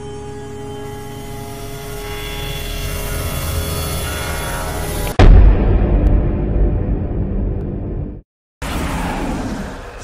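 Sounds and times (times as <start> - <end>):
droning music chords: 0.0 - 8.2.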